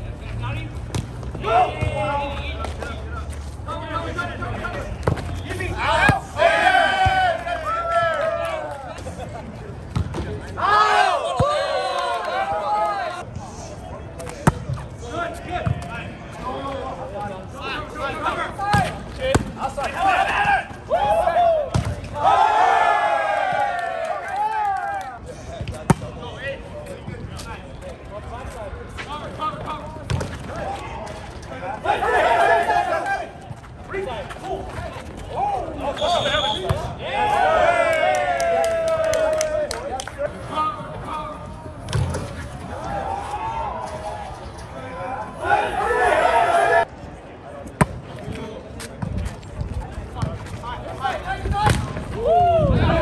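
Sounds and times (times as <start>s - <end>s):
players shouting and cheering: 0.0s - 47.3s, 49.7s - 53.0s.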